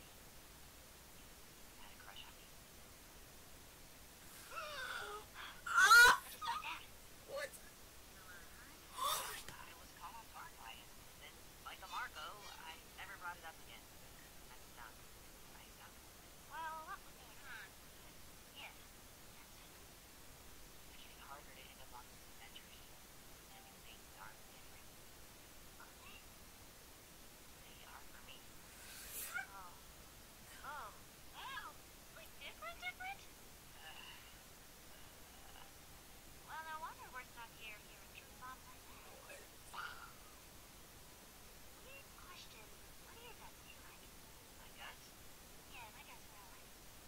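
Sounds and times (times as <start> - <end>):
wordless vocal outbursts: 4.3 - 7.7, 8.8 - 9.5, 28.9 - 29.6, 39.2 - 40.4
short breathy hiss: 28.6 - 29.4.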